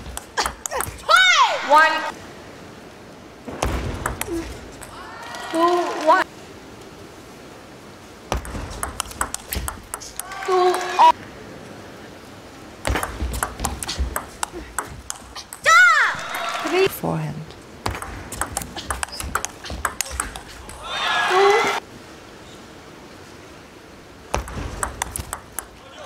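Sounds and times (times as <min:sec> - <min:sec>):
players shouting: 0:00.4 - 0:02.2, 0:04.3 - 0:06.2, 0:10.0 - 0:11.2, 0:13.9 - 0:17.0, 0:18.7 - 0:21.8, 0:25.6 - 0:26.0
table tennis ball clicks: 0:04.0 - 0:05.0, 0:08.3 - 0:11.0, 0:12.9 - 0:15.7, 0:17.9 - 0:20.8, 0:24.4 - 0:25.8.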